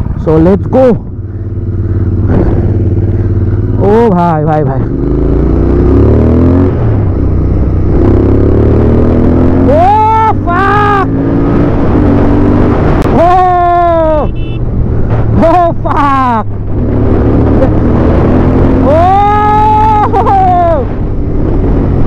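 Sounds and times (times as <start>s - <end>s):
motorcycle engine accelerating: 0.0s - 22.0s
rider yelling: 9.6s - 11.2s, 13.1s - 14.5s, 18.7s - 21.0s
wind rushing: 11.0s - 13.3s.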